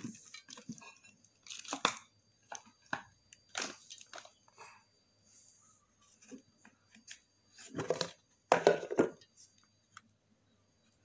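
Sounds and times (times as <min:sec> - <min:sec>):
plastic tub rustling and clattering: 0:07.5 - 0:09.3.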